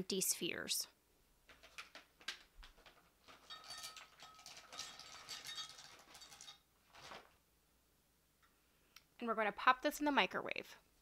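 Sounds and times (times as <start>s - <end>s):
candy wafers clattering into glass: 3.3s - 6.7s.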